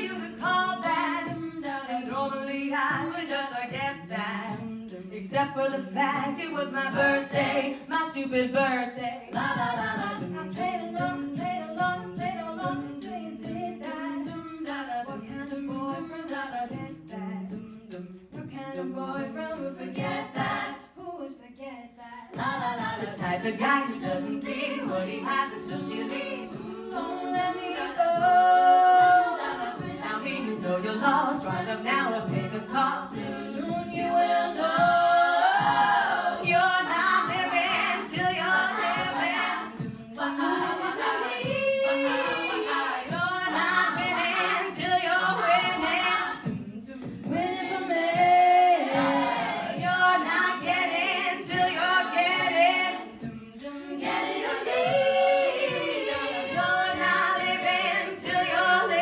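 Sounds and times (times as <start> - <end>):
group singing backing vocals: 0.0 - 8.2, 8.8 - 59.0
female lead voices singing: 0.0 - 59.0.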